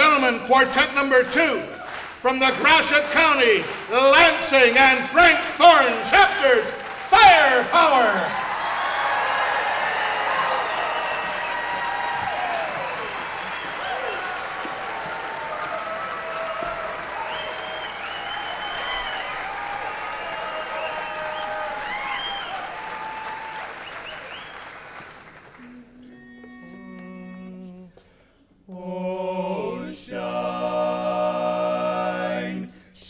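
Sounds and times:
audience applauding: 0.0 - 25.8
shouts from audience: 5.5 - 24.4
whistles from audience: 8.3 - 25.6.

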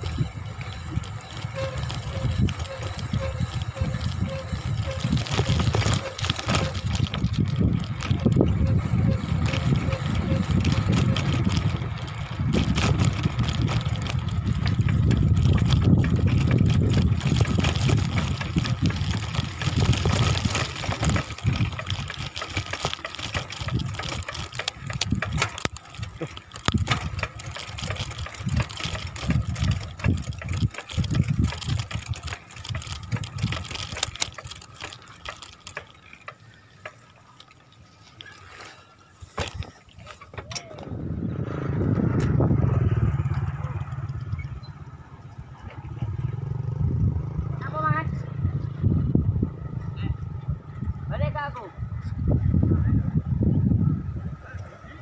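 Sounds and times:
wind buffeting microphone: 0.0 - 36.9, 39.4 - 55.0
tyre and road noise: 0.0 - 55.0.

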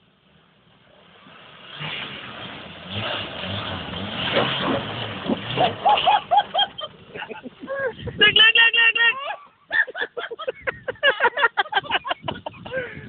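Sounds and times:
off-road engine working hard: 0.3 - 8.2
vehicle tipping over knocks: 1.8 - 6.8.

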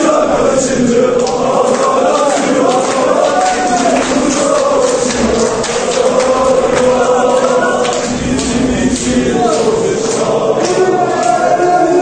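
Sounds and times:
crowd of men singing a chant: 0.0 - 12.0.

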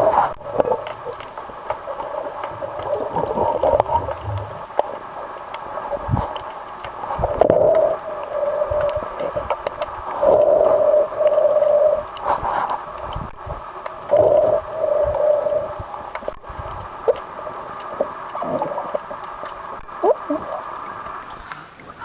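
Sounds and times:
gurgling water underwater: 0.0 - 22.0.

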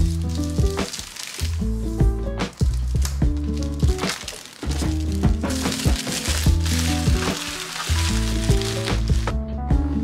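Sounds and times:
plastic shrink-wrap crackling: 0.0 - 9.3
background music with bass line: 1.5 - 4.1, 4.7 - 10.0.

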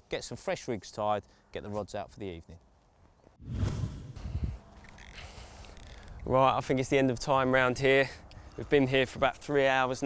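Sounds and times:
wind buffeting microphone: 3.4 - 4.8.

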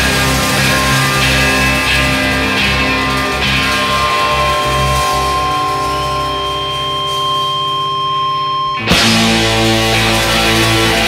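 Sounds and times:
electric guitar high tone: 0.0 - 11.0
pulsing bass line: 0.0 - 11.0.

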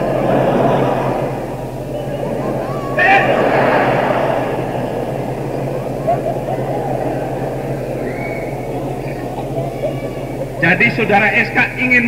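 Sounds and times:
audience laughter: 0.0 - 12.0
low tape hum: 0.0 - 12.0.

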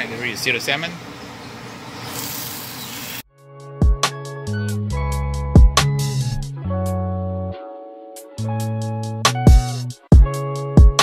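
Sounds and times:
fish sizzling in hot oil: 2.0 - 3.2
music with a beat: 3.5 - 7.1, 8.2 - 11.0.

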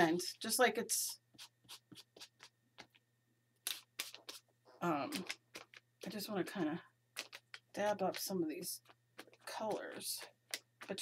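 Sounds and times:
blending tool scratching paper: 1.0 - 2.5.

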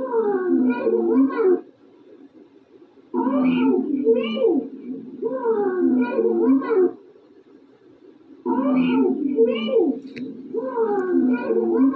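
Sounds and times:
dog howling: 10.5 - 11.9.

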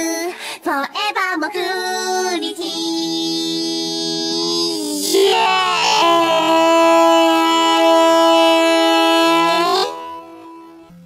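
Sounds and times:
person singing a long note: 1.8 - 10.9.

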